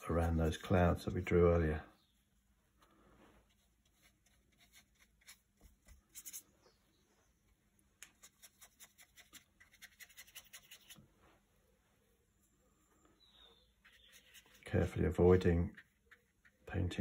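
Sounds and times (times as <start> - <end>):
brush scratching on paper: 3.4 - 6.5, 8.2 - 11.0, 13.8 - 16.7.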